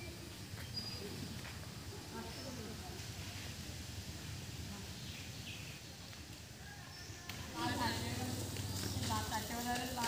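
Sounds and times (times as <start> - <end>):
people talking: 0.0 - 5.3, 5.9 - 10.0.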